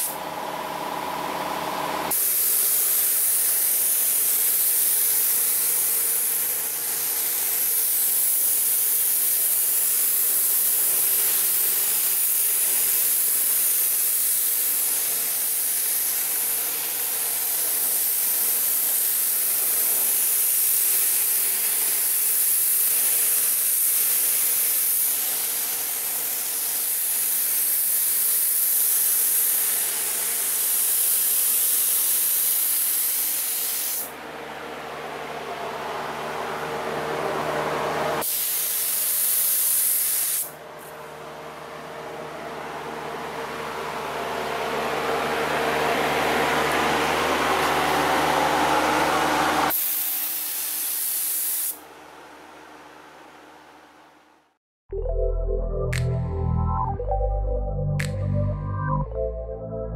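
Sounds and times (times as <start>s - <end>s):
paint spray gun hissing: 2.1s - 34.1s, 38.2s - 40.6s, 49.6s - 51.8s.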